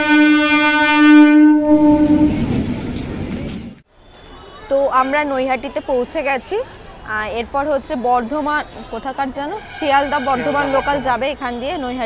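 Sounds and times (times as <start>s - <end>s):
train horn blast: 0.0s - 2.6s, 9.6s - 11.2s
train running rumble: 1.8s - 3.8s, 9.6s - 11.2s.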